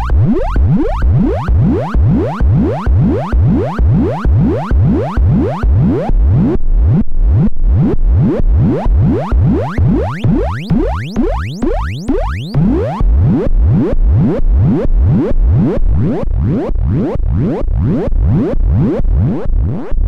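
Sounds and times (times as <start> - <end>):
synthesizer tone rising sweeps: 0.0 - 6.6, 8.2 - 13.9.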